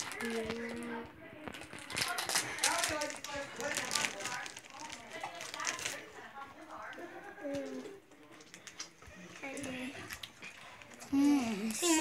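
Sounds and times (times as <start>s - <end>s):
soft human voices: 0.0s - 12.0s.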